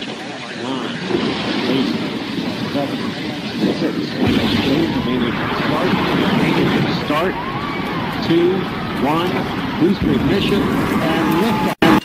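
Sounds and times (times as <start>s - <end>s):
voices: 0.4s - 12.0s
rocket engines deep rumble: 0.9s - 11.8s.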